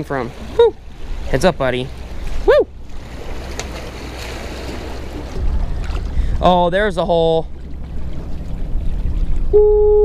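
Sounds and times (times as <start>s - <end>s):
small waves washing against boulders: 0.0s - 9.5s
wind rumbling on microphone: 2.1s - 10.0s.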